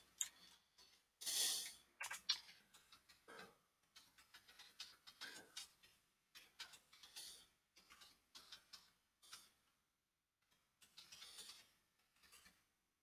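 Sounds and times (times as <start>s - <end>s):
faint keyboard typing: 0.0s - 9.8s, 10.4s - 12.8s.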